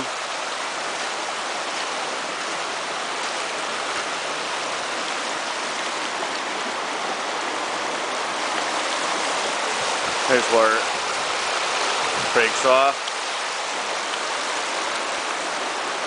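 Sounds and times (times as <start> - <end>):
stream rushing over stones: 0.0 - 16.0.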